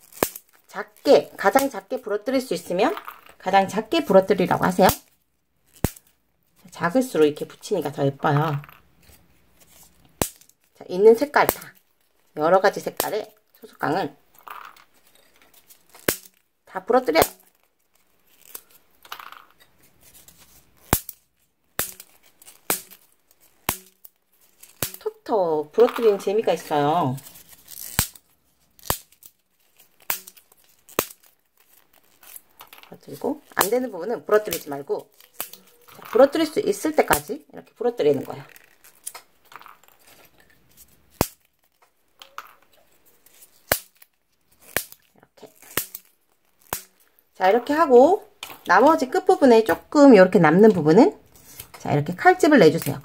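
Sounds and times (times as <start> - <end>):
soft crinkly rustle: 0.0 - 53.0
wooden sticks snapping: 21.8 - 23.0, 23.6 - 25.1, 30.0 - 37.4, 41.1 - 47.1.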